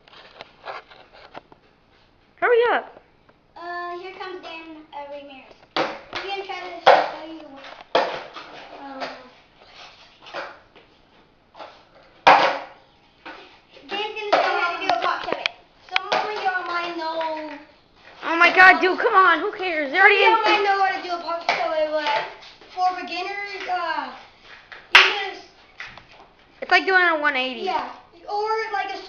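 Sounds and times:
children talking and calling out: 0:03.6 - 0:05.6, 0:08.6 - 0:09.5, 0:13.3 - 0:25.6, 0:27.5 - 0:29.0
skateboard clacking on concrete: 0:13.9 - 0:17.6.

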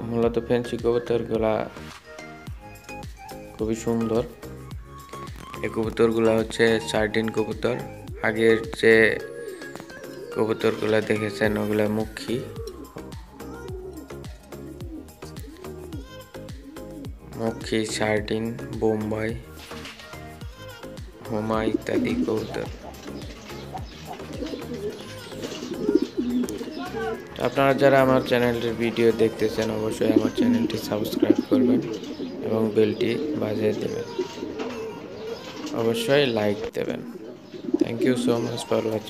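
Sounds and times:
background music with singing: 0:00.0 - 0:39.0
pigeons cooing: 0:02.6 - 0:39.0.

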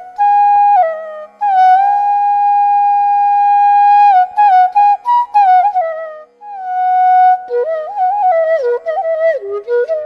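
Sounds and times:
faint steady drone: 0:00.0 - 0:10.0
flute holding long note: 0:00.0 - 0:10.0.

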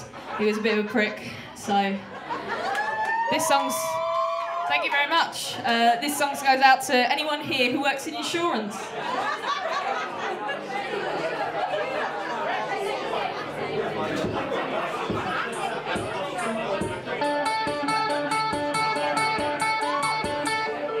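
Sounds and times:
audience chatter: 0:00.0 - 0:21.0
electric guitar chords: 0:17.2 - 0:21.0.

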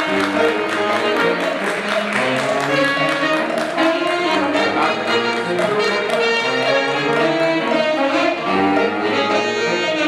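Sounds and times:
live brass band playing: 0:00.0 - 0:10.0.

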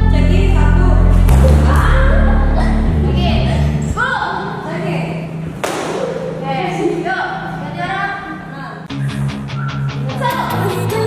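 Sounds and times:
children's voices: 0:10.0 - 0:11.0.

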